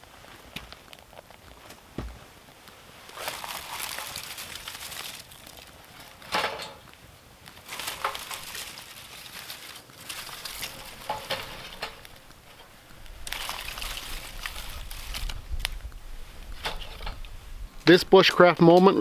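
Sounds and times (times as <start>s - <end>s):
twigs rustling and crunching: 0.0s - 17.9s
twig snapping: 7.5s - 16.0s.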